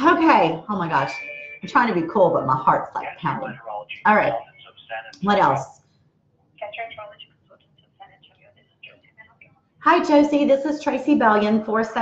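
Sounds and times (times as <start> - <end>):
person's voice through phone speaker: 0.0 - 5.6, 6.6 - 10.2.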